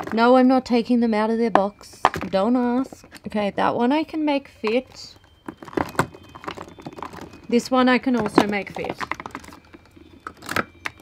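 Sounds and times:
box clicking against plastic tubes: 5.4 - 11.0.

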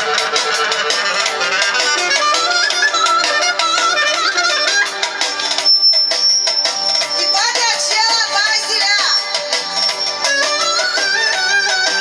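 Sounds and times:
live band keyboard and percussion: 0.0 - 12.0.

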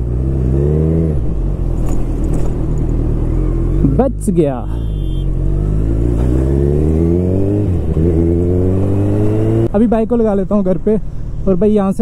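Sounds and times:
motorcycle engine revving: 0.0 - 9.9.

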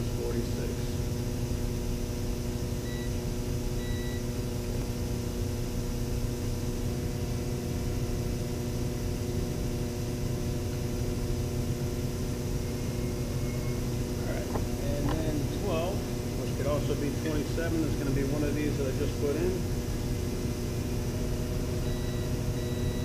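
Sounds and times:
steady electrical hum: 0.0 - 23.0.

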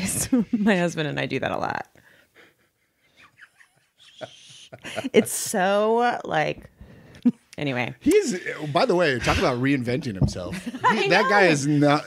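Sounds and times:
muffled stifled laughter: 3.2 - 5.4.

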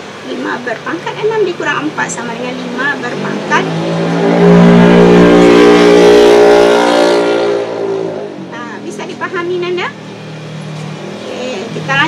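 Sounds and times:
vehicle engine passing by: 1.0 - 12.0.

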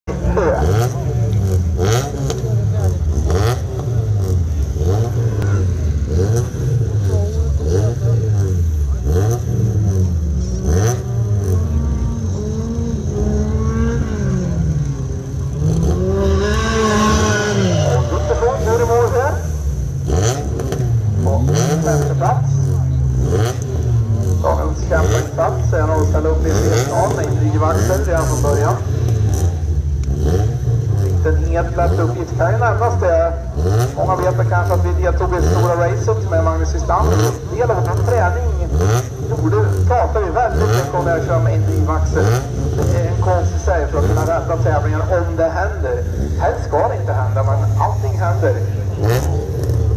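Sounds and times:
race car engines revving: 0.0 - 49.9.

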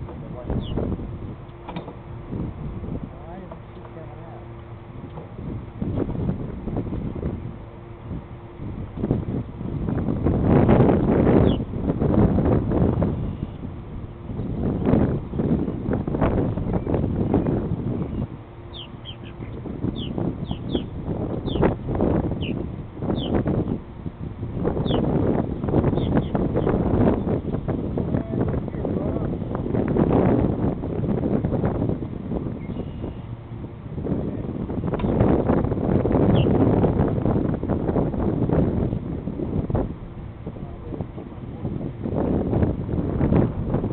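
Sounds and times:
wind buffeting microphone: 0.0 - 43.9
high downward bird chirps: 11.4 - 11.6, 18.0 - 21.7, 22.4 - 23.8, 24.8 - 25.1, 36.3 - 36.6.

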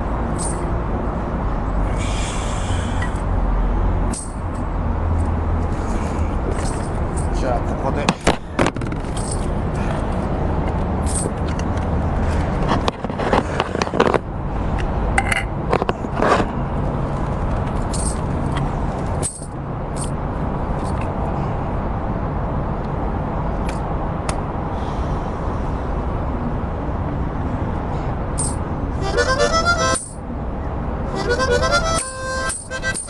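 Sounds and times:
low city rumble: 0.0 - 33.0
handling knocks and scrapes on microphone: 8.0 - 9.6, 10.6 - 14.3, 15.7 - 19.2.

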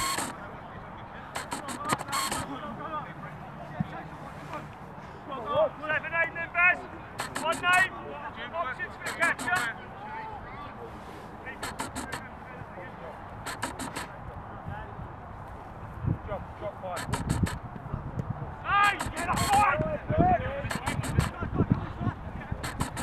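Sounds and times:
clusters of sharp clicks: 0.0 - 0.4, 1.3 - 2.5, 7.2 - 7.9, 9.0 - 9.8, 11.6 - 12.3, 13.4 - 14.2, 17.0 - 17.6, 18.8 - 19.7, 20.6 - 21.8, 22.6 - 23.0
players shouting calls: 18.6 - 22.0.

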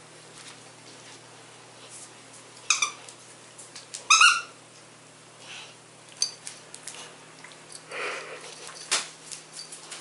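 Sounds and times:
dog toy squeaking: 2.7 - 3.0, 4.1 - 4.6.

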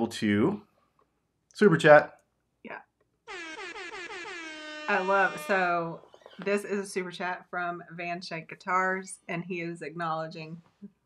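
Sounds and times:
air horn blast: 3.3 - 6.0.

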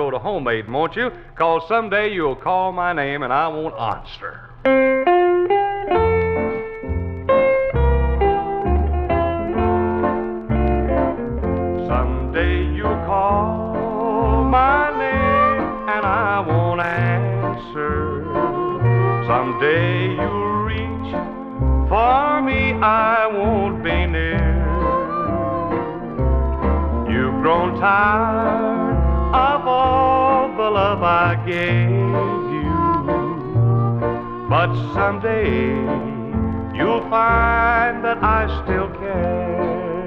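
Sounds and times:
country band playing slow song: 4.7 - 40.0.

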